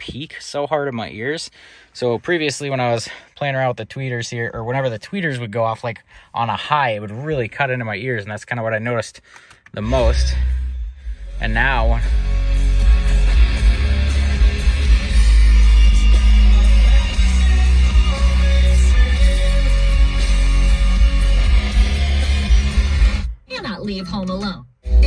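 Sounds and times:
bass-heavy music through car speakers: 9.6 - 25.0.

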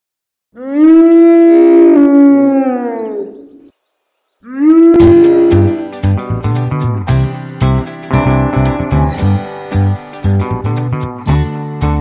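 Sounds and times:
low animal-like calls: 0.6 - 3.7, 4.4 - 5.9
strummed guitar music: 5.0 - 12.0.

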